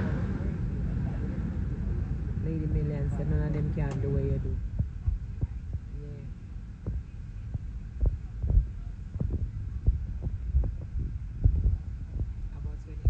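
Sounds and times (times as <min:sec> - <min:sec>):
airliner cabin rumble: 0:00.0 - 0:13.0.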